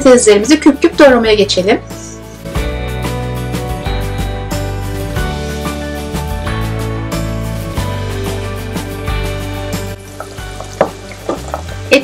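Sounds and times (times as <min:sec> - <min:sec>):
background music: 0:00.0 - 0:12.0
water boiling in pot: 0:09.9 - 0:12.0.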